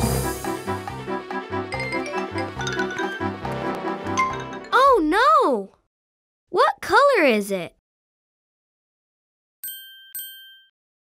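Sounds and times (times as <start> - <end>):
bell-like chime dings: 9.6 - 10.8.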